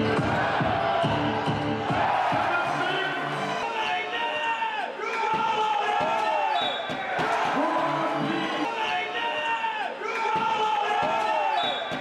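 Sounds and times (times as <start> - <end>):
arena crowd chatter and shouting: 0.0 - 12.0
sneaker squeals: 6.4 - 7.2, 11.2 - 12.0.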